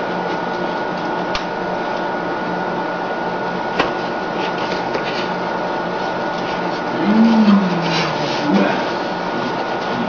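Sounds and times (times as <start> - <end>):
mechanical hum and hiss: 0.0 - 10.0.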